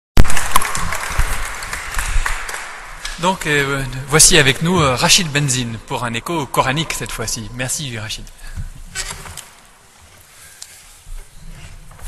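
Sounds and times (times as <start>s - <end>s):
audience applauding: 0.2s - 5.4s.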